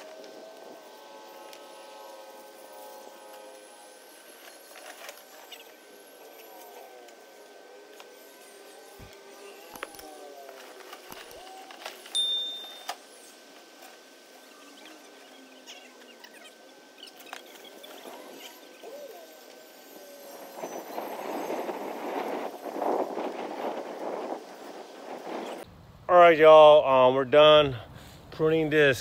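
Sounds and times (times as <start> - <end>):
high electronic ding and click: 12.2 - 13.0.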